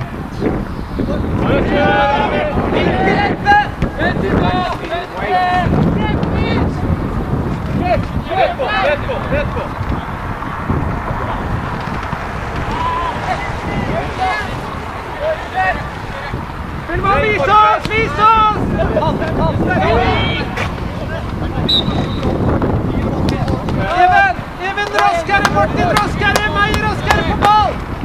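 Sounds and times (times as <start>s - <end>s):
voices calling out: 0.0s - 28.0s
wind rumbling on microphone: 0.0s - 28.0s.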